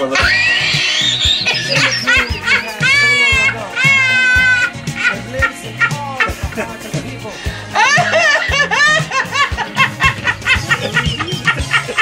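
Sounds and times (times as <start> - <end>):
background music: 0.0 - 12.0
woman laughing hard: 0.2 - 6.8, 7.7 - 12.0.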